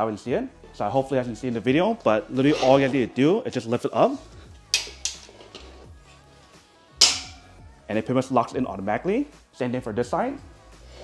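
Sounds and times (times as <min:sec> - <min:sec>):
background music: 0:00.0 - 0:11.0
metallic locking click: 0:04.8 - 0:05.7, 0:07.0 - 0:07.4
metal bed frame handling: 0:04.8 - 0:05.8, 0:07.0 - 0:07.5.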